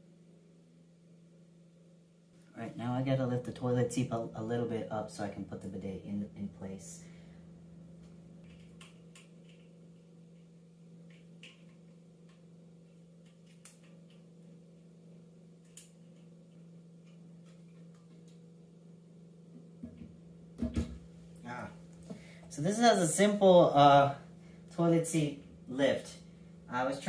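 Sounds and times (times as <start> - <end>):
steady low hum: 0.0 - 27.0
plastic toilet seat clicks: 19.8 - 21.0
toilet seat knocks: 19.8 - 21.0.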